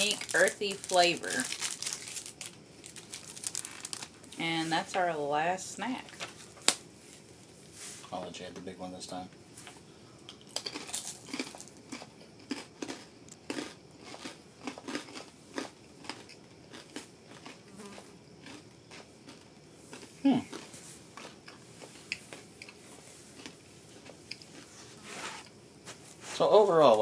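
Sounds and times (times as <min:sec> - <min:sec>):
rice crackers crunching: 0:00.0 - 0:04.4, 0:10.3 - 0:24.7.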